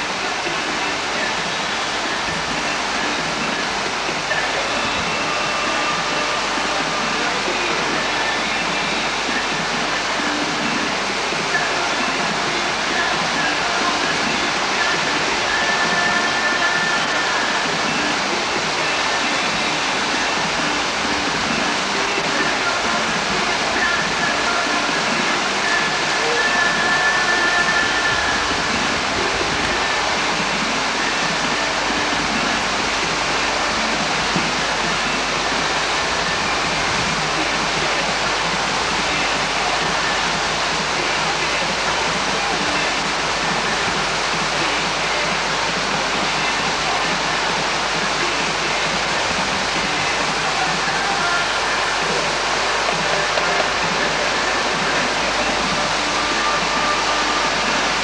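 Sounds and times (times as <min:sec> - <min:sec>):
whitewater rapids rushing: 0:00.0 - 0:58.0.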